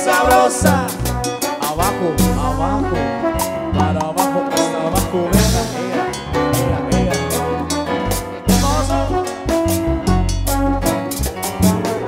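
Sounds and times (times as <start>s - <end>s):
bass line: 0.0s - 12.0s
percussion: 0.0s - 12.0s
trombone-led brass melody: 0.0s - 12.0s.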